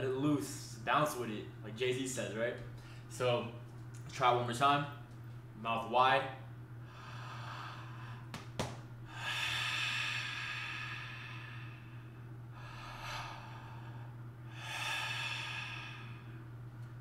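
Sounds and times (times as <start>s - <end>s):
man breathing deeply: 6.8s - 17.0s.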